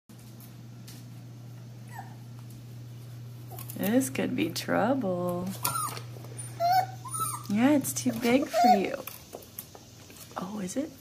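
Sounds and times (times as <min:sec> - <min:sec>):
steady low hum: 0:00.1 - 0:11.0
puppy whining: 0:01.8 - 0:02.3, 0:05.6 - 0:09.0.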